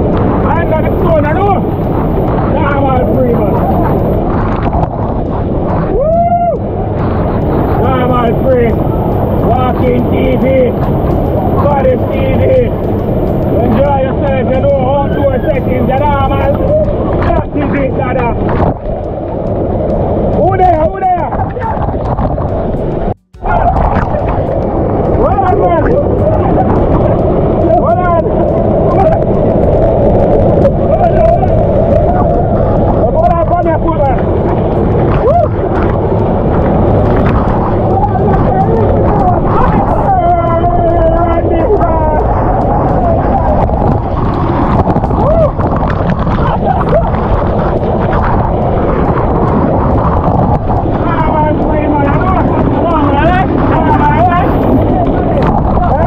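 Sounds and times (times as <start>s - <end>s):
waterfall rushing: 6.6s - 56.0s
man yelling: 38.9s - 42.3s.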